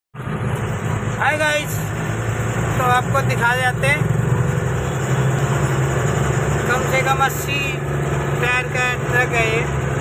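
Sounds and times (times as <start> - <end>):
vehicle engine drone from cab: 0.2 - 10.0.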